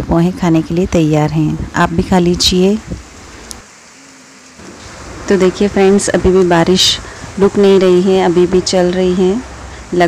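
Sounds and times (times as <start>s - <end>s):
rain on a wet street: 2.0s - 10.0s.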